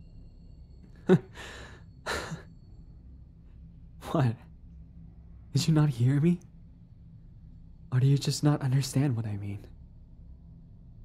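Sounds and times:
man huffing and sighing: 0:01.0 - 0:02.5.

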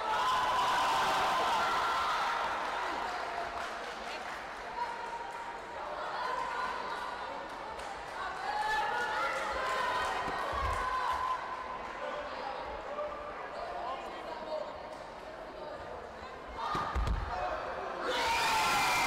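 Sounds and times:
voices calling out in hall: 0:00.0 - 0:19.0.

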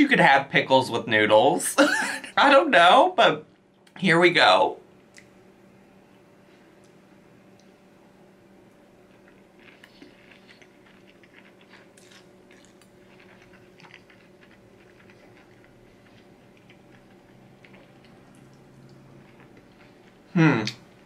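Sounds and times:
steady low hum: 0:00.0 - 0:21.0
person chewing noodles: 0:09.0 - 0:21.0.

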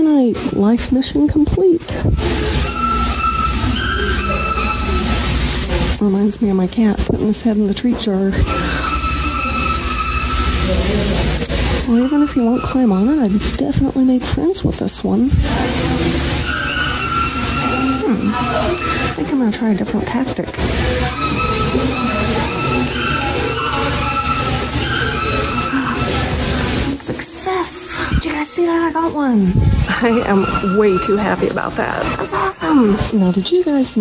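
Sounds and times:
machine whine: 0:00.0 - 0:27.2
faint wavering tones: 0:01.9 - 0:06.7, 0:07.4 - 0:14.0, 0:15.6 - 0:27.0.

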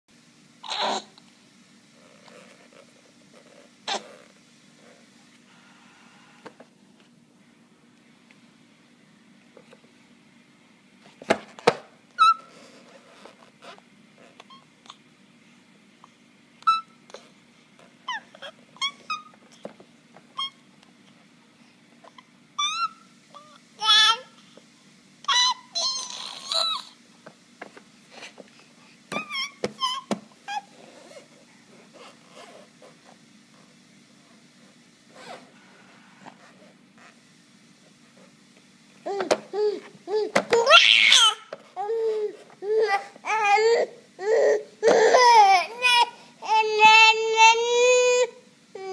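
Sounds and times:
infant babbling and squealing: 0:00.6 - 0:01.1, 0:25.3 - 0:27.0, 0:39.1 - 0:48.9.

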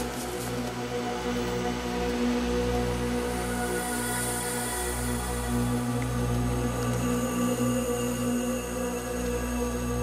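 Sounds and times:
film score low chords: 0:00.0 - 0:10.0.

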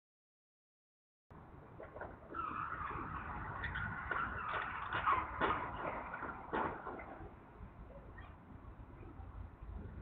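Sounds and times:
low road rumble: 0:01.3 - 0:10.0.

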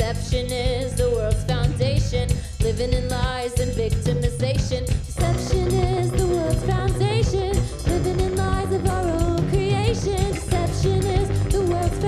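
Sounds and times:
drum kit: 0:00.0 - 0:12.0
electric bass: 0:00.0 - 0:12.0
woman singing with vibrato: 0:00.0 - 0:12.0
electric guitar: 0:05.2 - 0:12.0.

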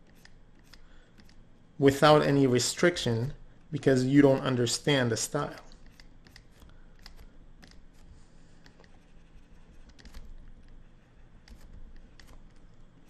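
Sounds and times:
stylus tapping and scratching screen: 0:05.4 - 0:12.8.

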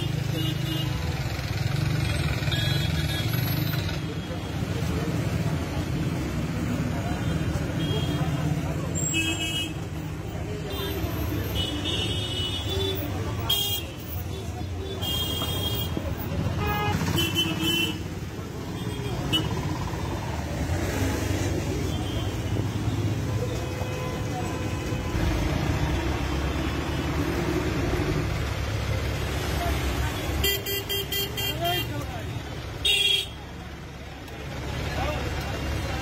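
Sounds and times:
crowd talking: 0:00.0 - 0:36.0
road traffic: 0:00.0 - 0:36.0.

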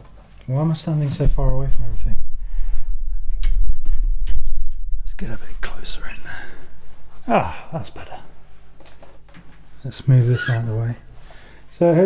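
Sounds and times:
microphone handling rumble: 0:01.2 - 0:09.3.

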